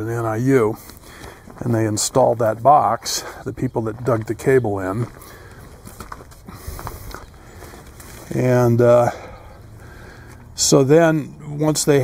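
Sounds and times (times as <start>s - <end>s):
soft footsteps on frozen ground: 0.0s - 10.6s.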